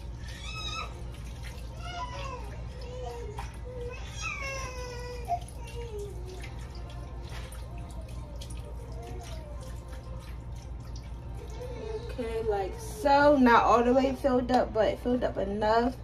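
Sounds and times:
broth pouring and splashing: 0.0 - 13.6.

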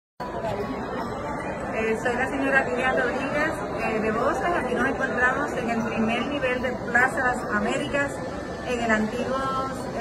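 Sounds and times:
crowd chatter in a hall: 0.2 - 10.0.

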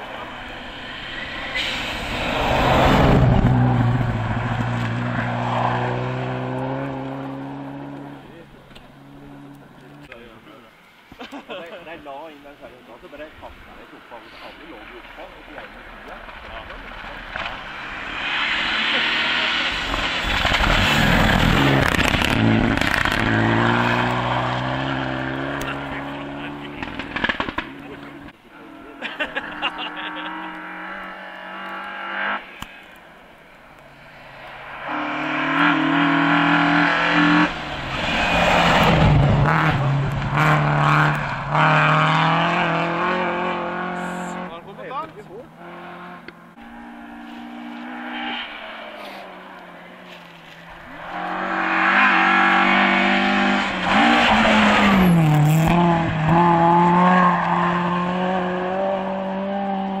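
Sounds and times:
rally car engine revving: 0.0 - 10.2, 13.8 - 33.0, 33.8 - 60.0.

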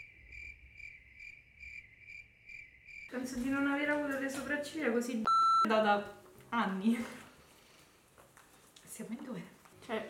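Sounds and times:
crickets chirping: 0.0 - 3.1.

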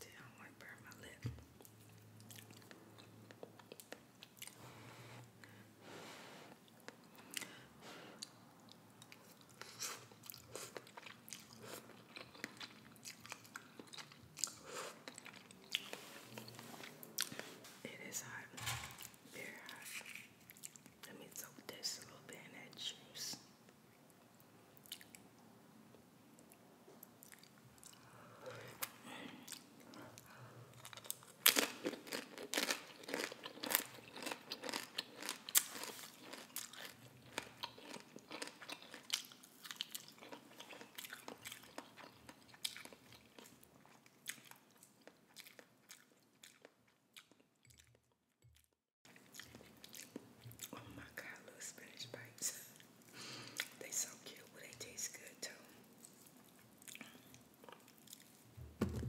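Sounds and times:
crunchy chips being chewed: 30.7 - 47.9, 48.6 - 50.8, 55.9 - 58.4.

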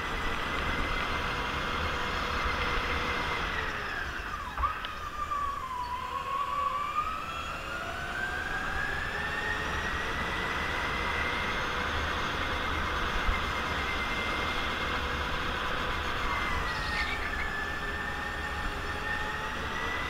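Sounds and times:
go-kart motor whining: 0.0 - 20.0.

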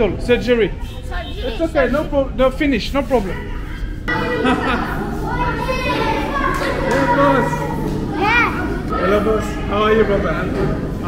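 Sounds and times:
children talking and laughing: 0.0 - 11.0
child's high-pitched voice: 5.2 - 8.9.

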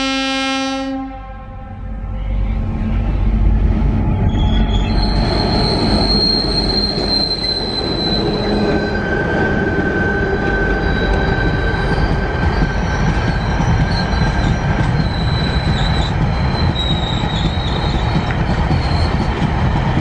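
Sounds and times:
diesel locomotives passing: 0.0 - 20.0
train wagons rumbling: 1.8 - 20.0
train wheels squealing: 4.0 - 20.0.

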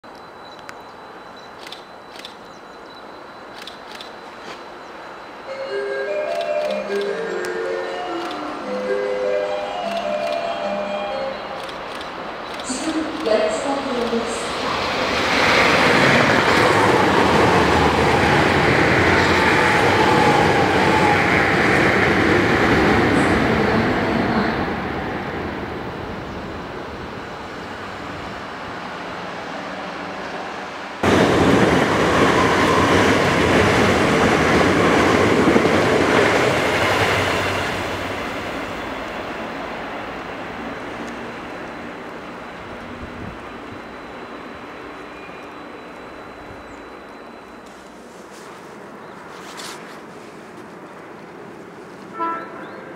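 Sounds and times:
electric train passing: 0.0 - 52.9.

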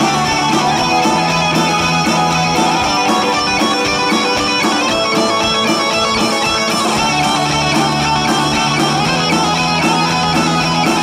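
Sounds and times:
bass guitar: 0.0 - 11.0
drum kit beat: 0.0 - 11.0
electric guitar: 0.0 - 11.0.

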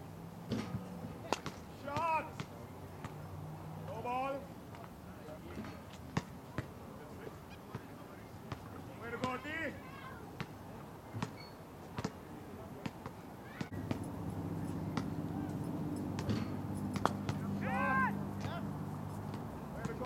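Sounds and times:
player's high-pitched shout: 9.4 - 10.3, 17.6 - 18.6.

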